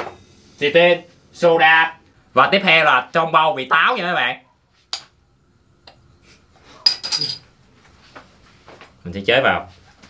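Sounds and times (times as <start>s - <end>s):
glass bottle clinking: 6.8s - 7.4s.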